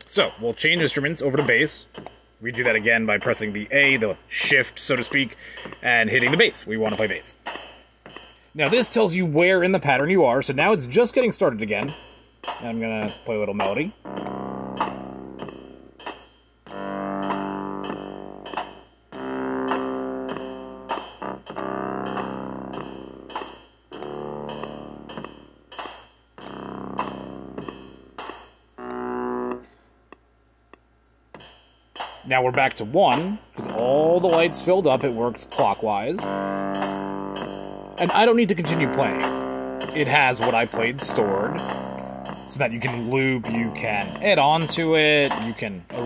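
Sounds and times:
kick drum and cymbal hits: 0.0s - 30.3s, 31.1s - 46.0s
light percussive ticks: 11.2s - 32.1s, 33.1s - 46.0s
synth bass melody: 12.7s - 25.8s, 26.4s - 29.9s, 33.1s - 46.0s.

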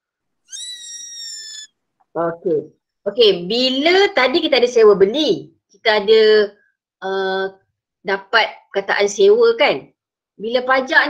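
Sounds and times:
child squealing: 0.5s - 1.7s.

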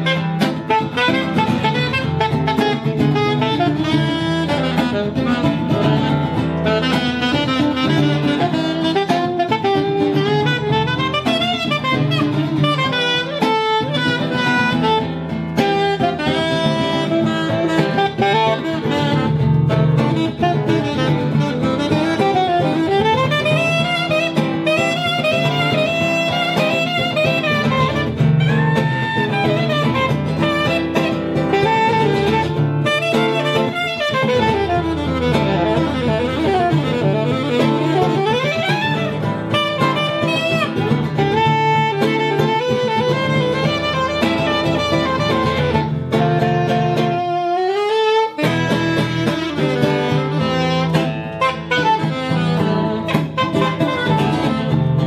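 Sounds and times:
band backing: 0.0s - 47.4s, 48.3s - 55.0s
saxophone solo: 0.0s - 55.0s.

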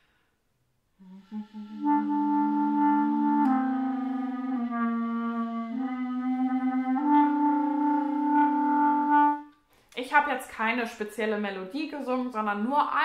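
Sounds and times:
person singing into clarinet: 1.0s - 9.5s
clarinet playing: 1.0s - 9.6s.

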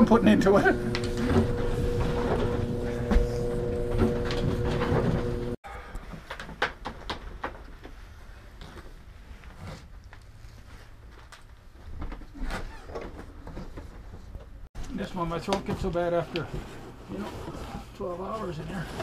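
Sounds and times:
machine hum with low rumble: 0.0s - 5.6s.

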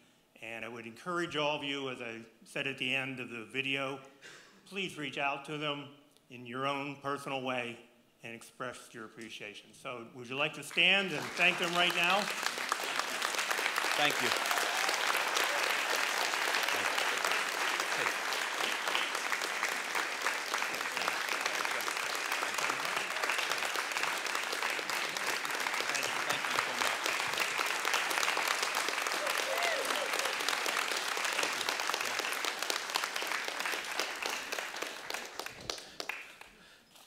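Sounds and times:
congregation applauding: 10.7s - 36.8s.

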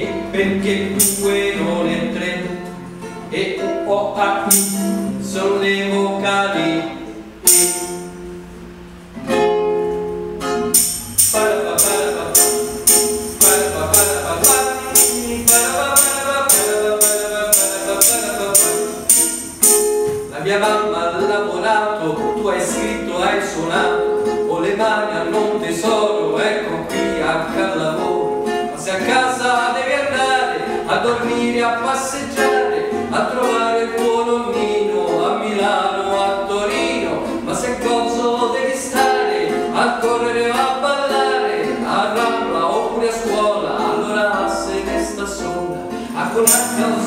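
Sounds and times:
person singing a children's song: 0.0s - 8.0s, 10.8s - 47.0s
acoustic guitar chords strummed: 0.0s - 47.0s.

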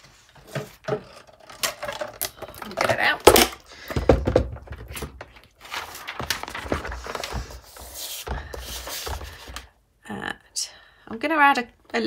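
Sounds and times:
paper rustling: 4.9s - 9.7s.

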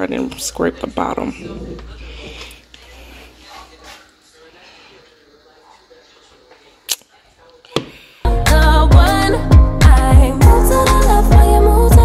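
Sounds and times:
faint indistinct voices: 1.0s - 8.2s.

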